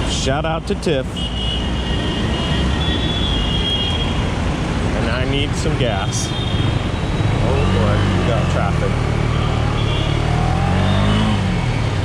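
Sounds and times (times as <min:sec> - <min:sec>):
road and traffic noise: 0:00.0 - 0:12.0
motorcycle engine: 0:06.4 - 0:12.0.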